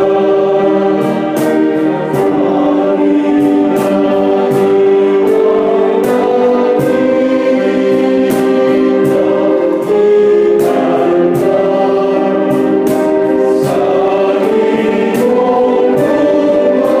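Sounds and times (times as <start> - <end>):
men's choir singing a hymn: 0.0 - 17.0.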